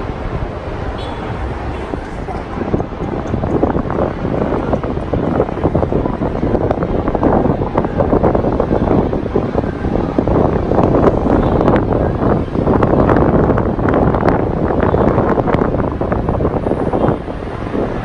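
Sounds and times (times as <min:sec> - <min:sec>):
distant traffic rumble: 0:00.0 - 0:18.0
wind buffeting microphone: 0:00.0 - 0:18.0.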